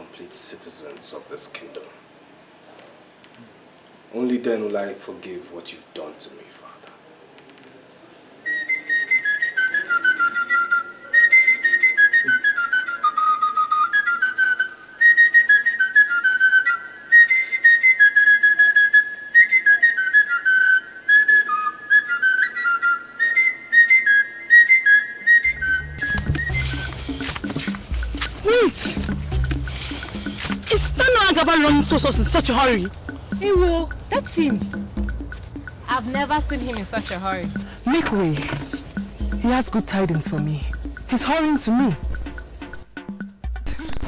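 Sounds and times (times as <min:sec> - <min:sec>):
high melody of short notes: 0:25.5 - 0:43.6
low heavy beat: 0:25.5 - 0:44.0.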